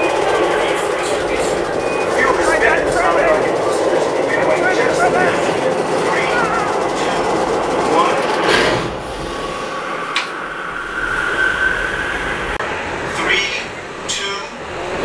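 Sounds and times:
dense rumbling noise: 0.0 - 15.0
indistinct voices: 0.0 - 15.0.

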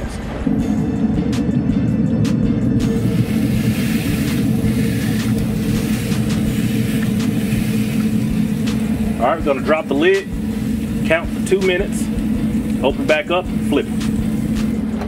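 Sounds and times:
background music: 0.0 - 15.0
low rumble: 0.0 - 15.0
steak sizzling on grill: 2.8 - 14.8.

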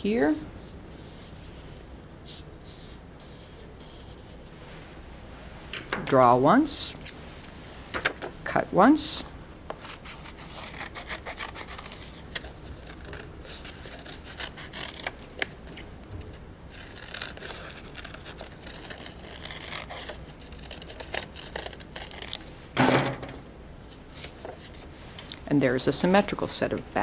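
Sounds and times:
scissors snipping paper: 9.7 - 15.9, 16.8 - 22.4.

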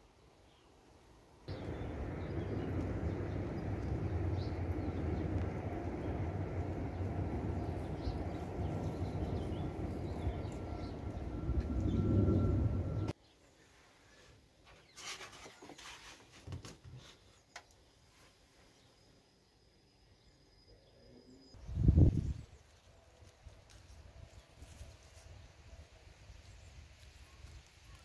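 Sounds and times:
low rumble: 1.5 - 13.2
faint whistle-like tone: 9.3 - 13.1.

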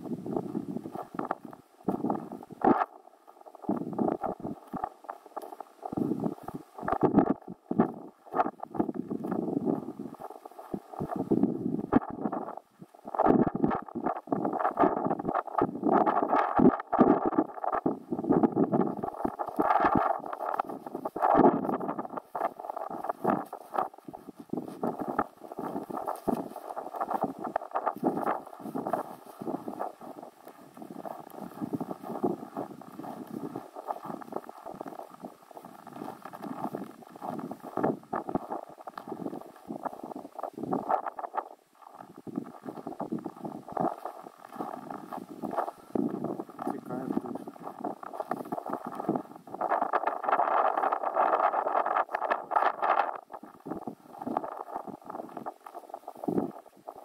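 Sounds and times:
clothing rustle: 3.3 - 57.0
footsteps on packed snow: 18.9 - 40.9.

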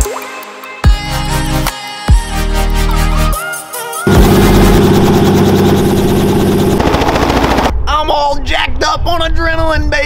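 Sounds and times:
helicopter rotor chopping: 4.1 - 7.8.

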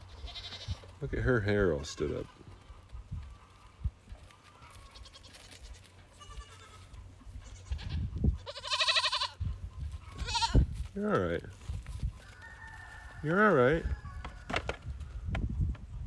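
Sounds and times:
young goat bleating: 0.0 - 0.9, 4.5 - 10.8.

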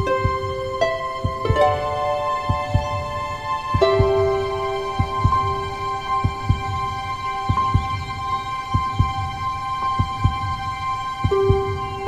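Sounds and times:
heartbeat thumps: 0.0 - 12.0
sustained music tones: 0.0 - 12.0.

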